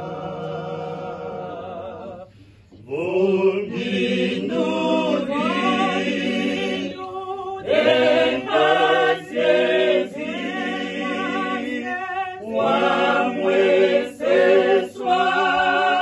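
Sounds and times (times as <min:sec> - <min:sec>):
group singing a cappella: 0:00.0 - 0:16.0
singers breathing: 0:02.2 - 0:02.8.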